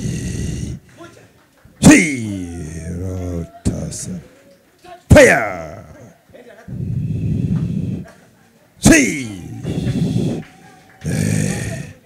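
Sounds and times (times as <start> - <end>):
woman growling: 0.0 - 0.9, 1.9 - 3.7, 5.4 - 8.2, 9.1 - 12.0.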